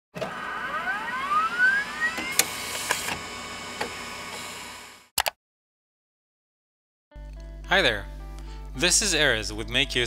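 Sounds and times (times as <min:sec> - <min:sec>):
rising electronic sweep: 0:00.6 - 0:02.3.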